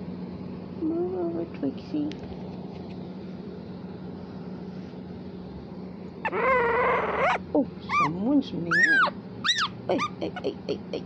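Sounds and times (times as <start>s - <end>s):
puppy whining: 6.2s - 10.4s.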